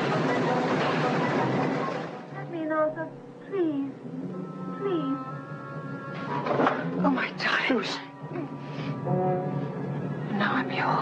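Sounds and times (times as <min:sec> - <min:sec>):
droning music tones: 0:00.0 - 0:11.0.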